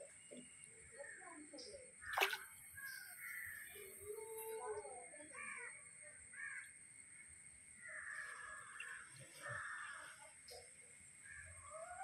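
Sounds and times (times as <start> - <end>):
crows calling: 6.3 - 6.7, 7.8 - 10.1.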